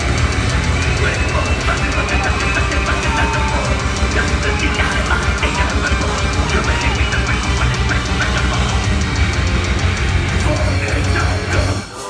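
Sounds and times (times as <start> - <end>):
fast drum beat: 0.0 - 11.9
distorted electric guitars: 0.0 - 12.0.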